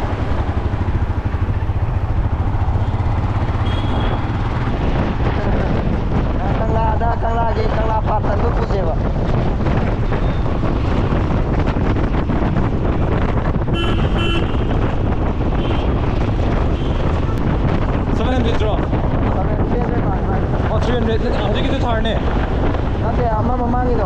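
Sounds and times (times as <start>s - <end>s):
motorcycle engine: 0.0s - 24.0s
road noise: 0.0s - 24.0s
wind rush on microphone: 0.0s - 24.0s
vehicle horn short beeps: 3.6s - 4.2s, 13.8s - 14.5s.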